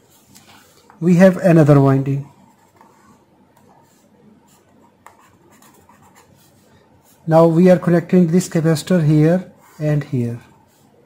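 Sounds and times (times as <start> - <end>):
pen scratching on paper: 2.3 - 7.3, 9.4 - 11.0.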